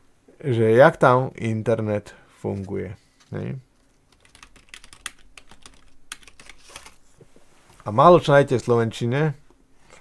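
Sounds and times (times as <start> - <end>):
typing on computer keyboard: 4.1 - 6.9.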